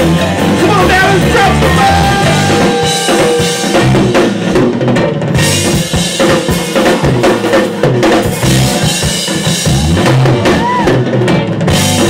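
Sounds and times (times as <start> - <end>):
bass drum: 0.0 - 12.0
live rock band: 0.0 - 12.0
cymbal hits: 2.2 - 4.6.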